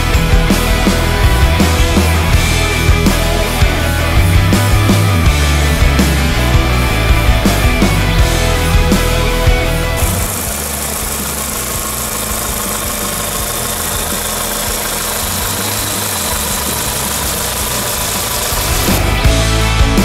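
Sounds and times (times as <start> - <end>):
car engine idling: 0.0 - 20.0.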